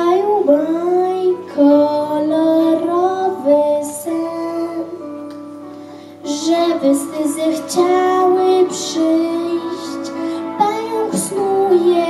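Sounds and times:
girl singing into a microphone: 0.0 - 12.0
musical accompaniment: 0.0 - 12.0.

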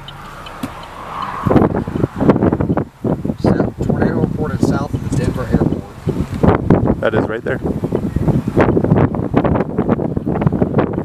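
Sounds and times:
road noise inside car: 0.0 - 11.0.

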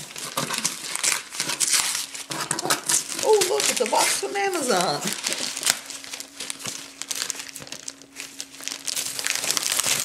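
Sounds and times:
wrapping paper tearing and crinkling: 0.0 - 10.0.

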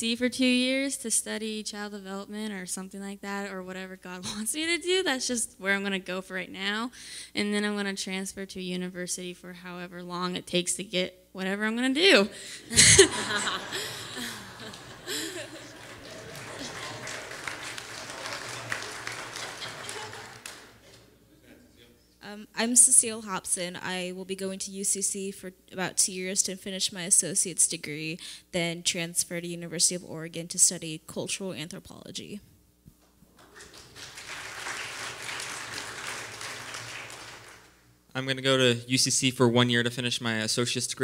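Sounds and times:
crowd applauding: 12.7 - 21.2, 33.4 - 37.8
murmured voices: 12.7 - 22.0.

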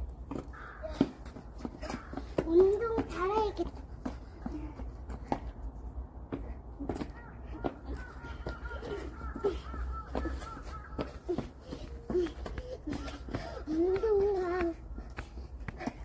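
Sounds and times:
light footsteps on asphalt: 0.0 - 16.0
children's vocal exclamations: 7.0 - 14.8.

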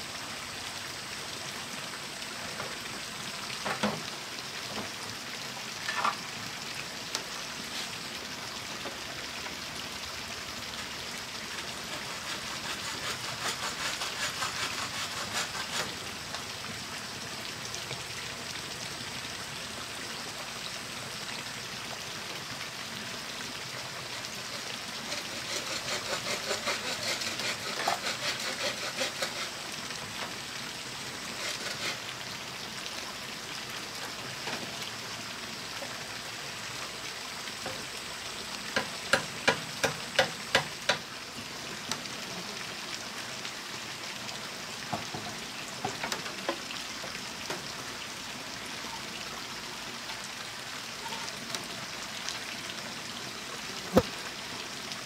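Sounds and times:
steady hiss: 0.0 - 48.9
bamboo scraping and tapping: 12.0 - 16.0, 25.1 - 29.6, 31.3 - 32.0, 38.8 - 41.0
sharp knocks on bamboo: 53.9 - 54.1.

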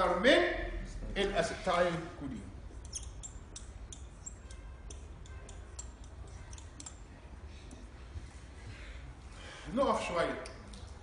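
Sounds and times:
marker squeaking on whiteboard: 2.7 - 7.1.

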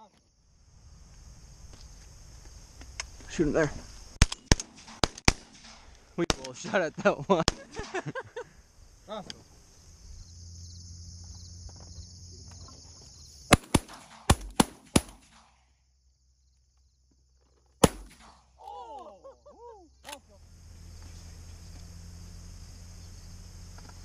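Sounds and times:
shotgun shots: 4.2 - 6.8, 7.4 - 8.0, 13.5 - 15.6, 17.8 - 18.5.

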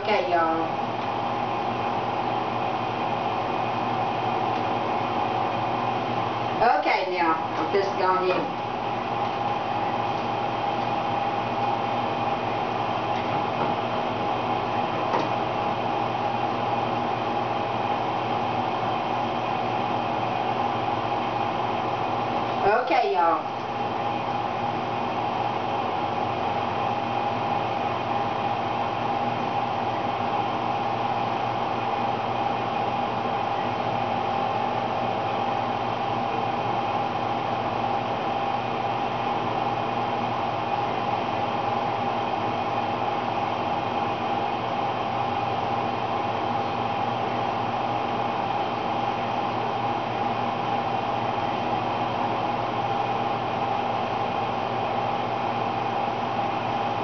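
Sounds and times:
steady mechanical hum: 0.0 - 57.0.

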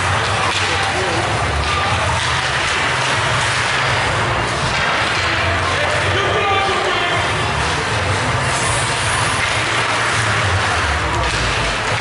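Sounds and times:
ice rink crowd ambience: 0.0 - 12.0.

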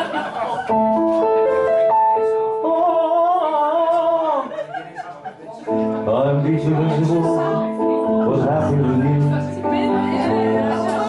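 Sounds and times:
electric keyboard chords: 0.7 - 3.2, 5.7 - 11.0.

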